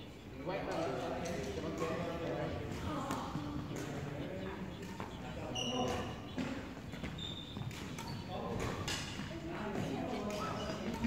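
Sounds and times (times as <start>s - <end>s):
badminton rackets striking shuttlecocks: 0.7s - 11.0s
shoes squeaking on wooden floor: 2.8s - 11.0s.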